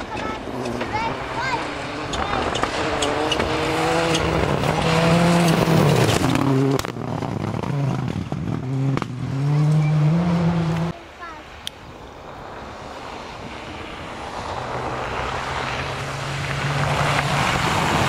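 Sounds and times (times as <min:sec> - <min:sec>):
rally car engine revving: 0:00.0 - 0:11.0, 0:12.6 - 0:18.0.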